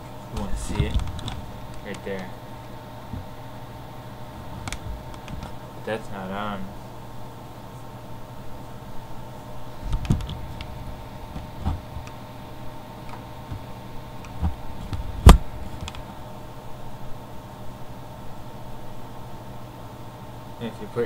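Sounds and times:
steady background hum: 0:00.0 - 0:21.0.

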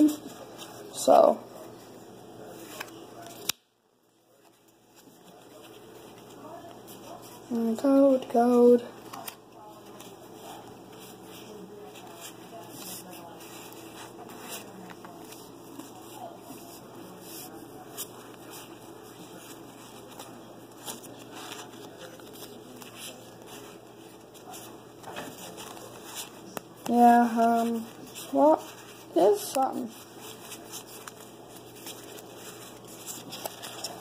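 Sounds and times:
room noise: 0:00.0 - 0:34.0
cards rustling and clicking: 0:02.5 - 0:03.6, 0:04.4 - 0:34.0.

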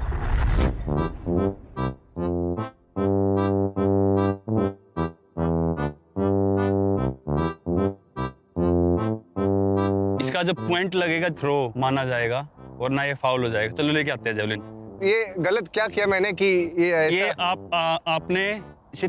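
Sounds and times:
keyboard chords: 0:00.9 - 0:11.7, 0:12.5 - 0:19.0.

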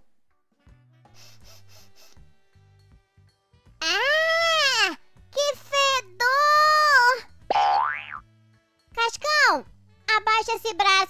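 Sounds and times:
faint background music: 0:00.0 - 0:11.0
girl's cartoon voice crying out: 0:03.8 - 0:05.0.

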